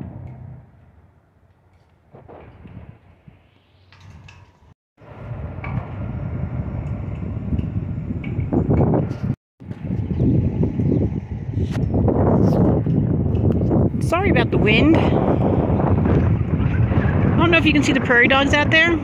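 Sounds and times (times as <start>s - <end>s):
wind buffeting microphone: 2.1s - 19.0s.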